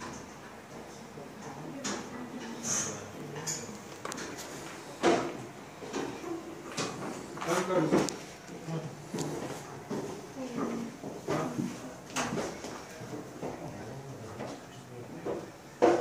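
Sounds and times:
people talking: 9.7 - 15.4.

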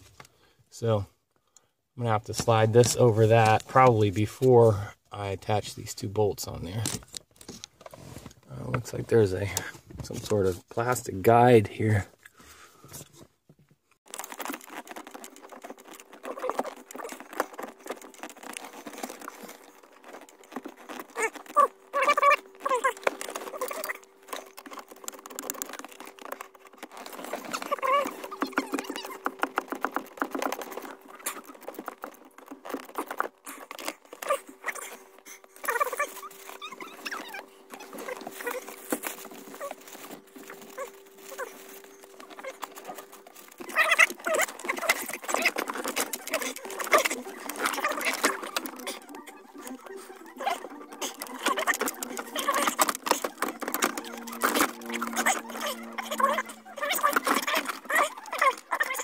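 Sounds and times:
hands handling plastic trim: 14.1 - 59.0.

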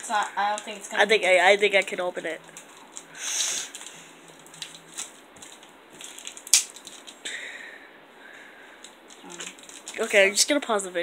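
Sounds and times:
foil pack crinkling and tearing: 0.5 - 7.2, 8.8 - 10.4.

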